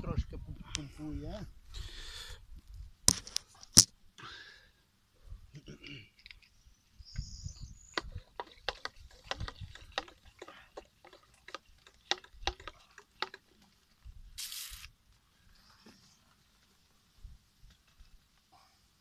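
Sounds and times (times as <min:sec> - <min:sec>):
short hiss: 0:14.4 - 0:15.0.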